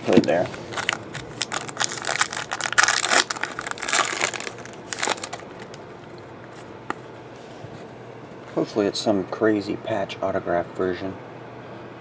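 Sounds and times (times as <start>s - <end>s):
foil wrapper tearing and crinkling: 0.2s - 5.8s.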